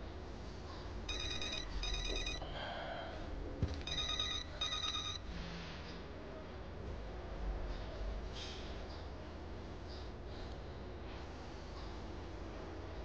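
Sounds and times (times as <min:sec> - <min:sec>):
mobile phone double ring: 0:01.1 - 0:02.4, 0:03.8 - 0:05.2.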